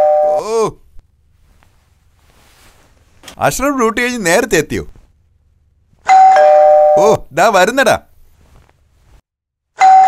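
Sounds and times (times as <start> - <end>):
electronic two-tone doorbell chime: 0.0 - 0.4, 6.1 - 7.0, 9.8 - 10.0.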